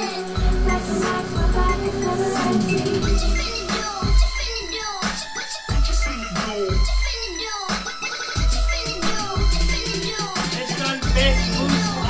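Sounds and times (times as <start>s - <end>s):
music with deep bass beat: 0.0s - 12.0s.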